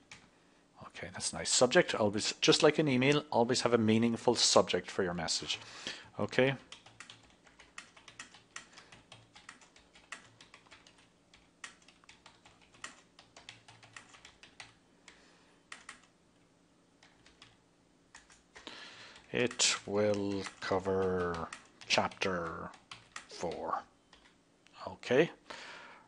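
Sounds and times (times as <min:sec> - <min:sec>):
faint keyboard typing: 0:00.0 - 0:00.3, 0:06.3 - 0:24.8.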